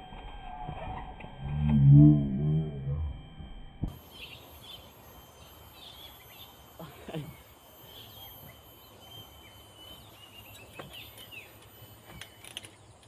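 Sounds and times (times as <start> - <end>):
low wavering moan: 0.0 - 3.9
faint high chirping: 3.9 - 13.0.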